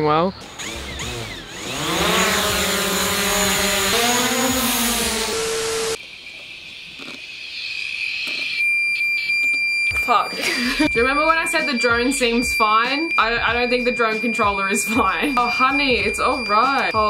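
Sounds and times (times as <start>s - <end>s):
drone motors whining: 0.3s - 6.0s, 9.9s - 17.0s
high steady beep: 8.6s - 17.0s.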